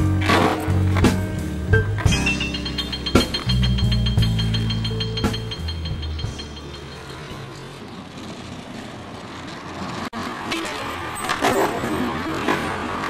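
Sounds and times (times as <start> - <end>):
skateboard wheels rolling on asphalt: 7.5 - 13.0.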